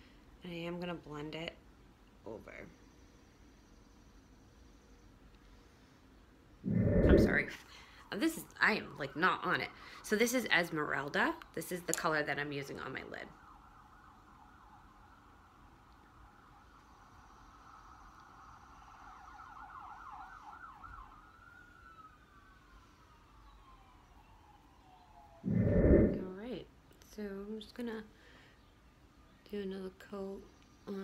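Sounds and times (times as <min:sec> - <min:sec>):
faint warbling siren: 0:06.6 - 0:10.9, 0:12.8 - 0:26.6.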